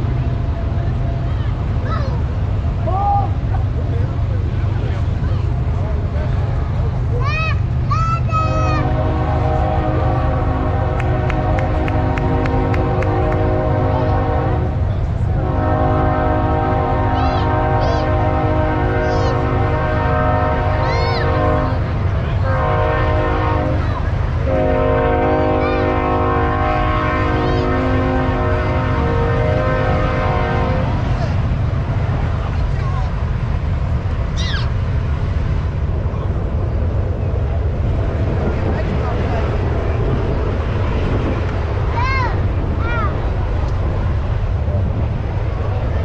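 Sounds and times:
train horn chord: 8.8 - 23.8, 24.4 - 31.2.

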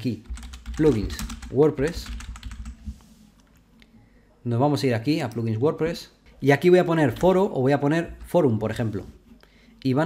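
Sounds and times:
typing on computer keyboard: 0.2 - 2.8.

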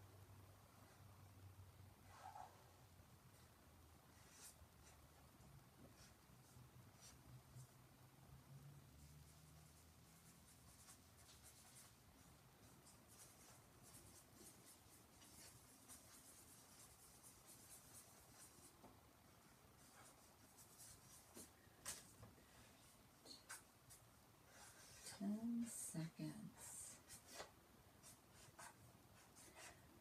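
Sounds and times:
pen scratching on paper: 19.8 - 22.0, 23.4 - 25.2, 26.9 - 29.8.

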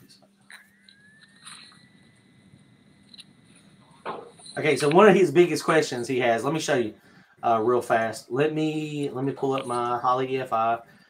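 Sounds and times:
thin steady high tone: 0.0 - 7.6
faint room noise: 0.0 - 11.0.

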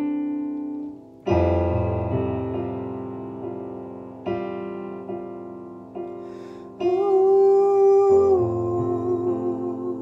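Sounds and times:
piano chord: 0.0 - 10.0.

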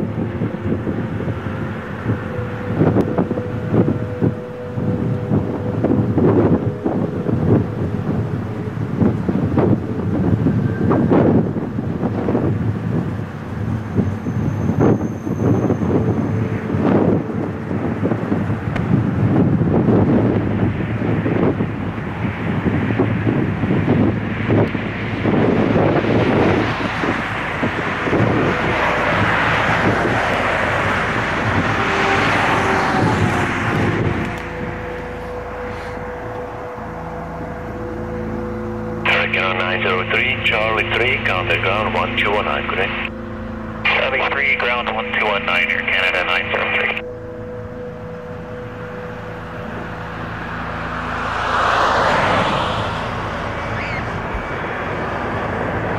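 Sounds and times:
wind buffeting microphone: 0.0 - 45.6
jet engines running: 0.0 - 55.9.

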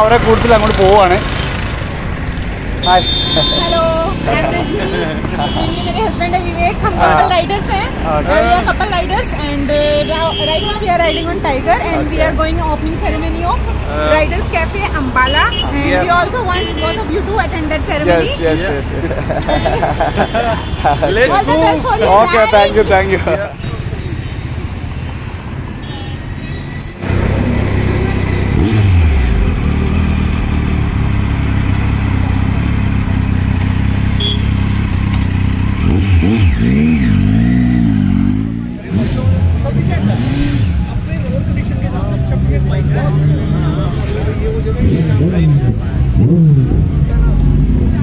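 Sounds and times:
motorcycle engine revving: 0.0 - 8.3, 27.0 - 48.0
voices: 2.8 - 25.4, 27.0 - 30.3, 31.0 - 48.0.

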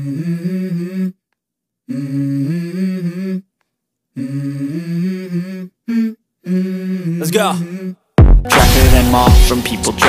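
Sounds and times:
hummed vocal line: 0.0 - 1.2, 1.9 - 3.5, 4.2 - 10.0.

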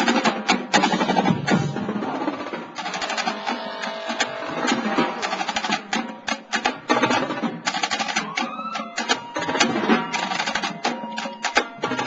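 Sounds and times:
marching snare drums: 0.0 - 12.0
tenor drums: 0.0 - 12.0.

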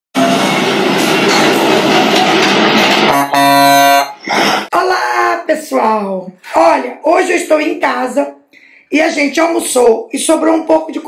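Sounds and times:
horn-like chord: 3.1 - 4.2.

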